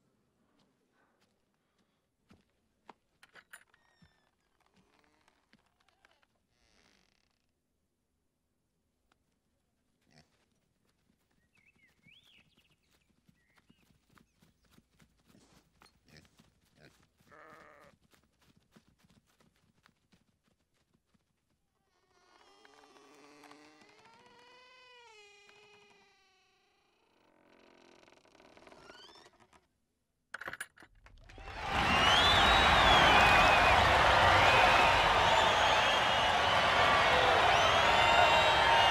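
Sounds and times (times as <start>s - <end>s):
sheep hooves on grass: 10.0s - 21.4s
crowd cheering and clapping: 31.2s - 38.9s
high whistling chirps: 31.4s - 38.9s.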